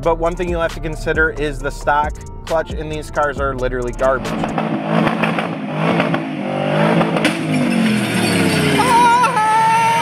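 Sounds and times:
car engine revving hard: 0:04.2 - 0:10.0
tyres squealing: 0:08.0 - 0:10.0.

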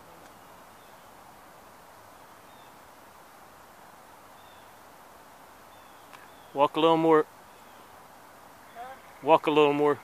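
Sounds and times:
faint steady hiss: 0:00.0 - 0:10.0
bird chirps: 0:05.7 - 0:06.7.

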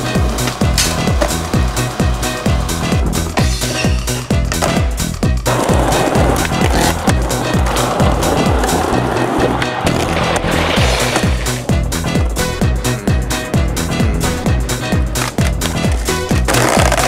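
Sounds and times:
skateboard wheels rolling: 0:00.0 - 0:12.7, 0:14.5 - 0:17.0.

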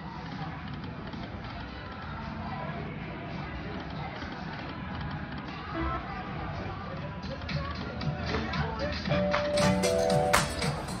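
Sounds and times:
background chatter: 0:00.0 - 0:11.0
slot machine music and jingles: 0:09.6 - 0:11.0.

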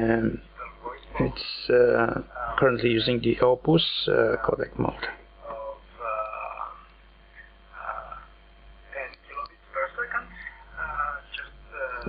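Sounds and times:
man's voice from phone speaker: 0:00.0 - 0:06.4, 0:09.0 - 0:12.0.

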